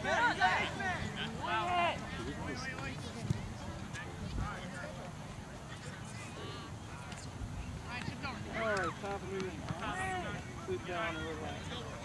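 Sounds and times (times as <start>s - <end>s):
distant players shouting: 0.0s - 2.7s, 8.1s - 11.8s.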